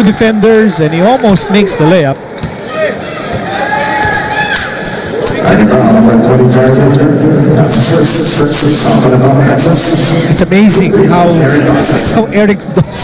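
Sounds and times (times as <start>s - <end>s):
crowd noise: 0.0s - 13.0s.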